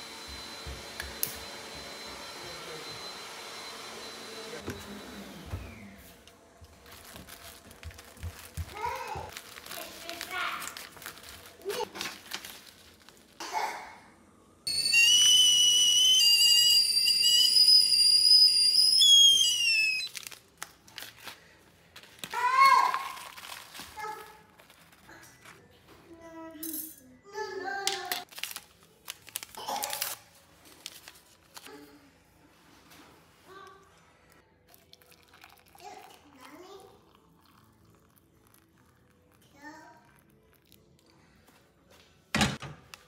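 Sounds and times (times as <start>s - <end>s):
kettle whistling: 14.7s - 20.1s.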